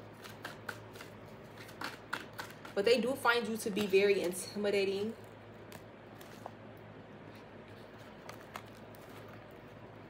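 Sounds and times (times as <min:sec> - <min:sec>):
cards shuffled by hand: 0:07.3 - 0:09.9.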